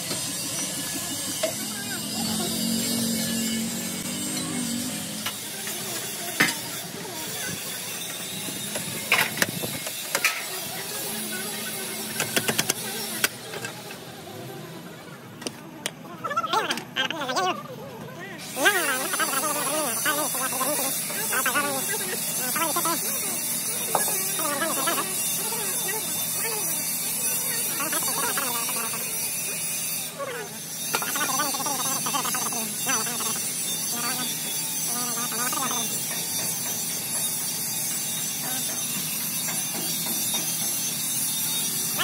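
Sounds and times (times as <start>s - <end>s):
people talking: 0.0s - 9.1s, 10.2s - 29.6s, 30.2s - 36.2s.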